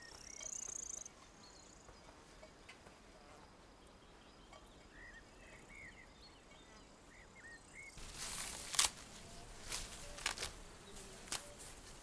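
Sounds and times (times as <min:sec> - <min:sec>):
small bird chirping: 0:00.0 - 0:02.0
rustling and crunching in soil: 0:08.0 - 0:12.0.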